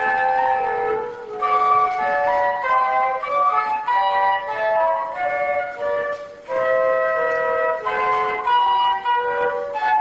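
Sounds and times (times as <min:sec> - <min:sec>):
flutes playing in harmony: 0:00.0 - 0:10.0.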